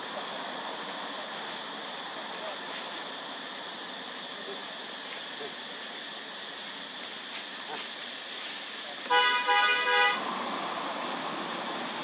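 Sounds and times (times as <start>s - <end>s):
vehicle horn honking: 9.1s - 10.2s.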